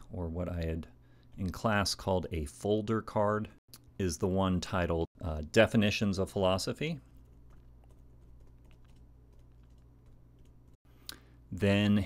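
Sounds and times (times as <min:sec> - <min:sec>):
laptop keyboard typing: 0:07.1 - 0:10.8.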